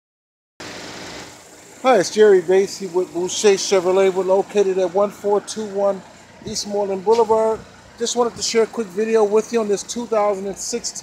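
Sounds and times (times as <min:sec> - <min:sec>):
car engine idling: 0:00.7 - 0:11.0
man speaking: 0:01.8 - 0:11.0.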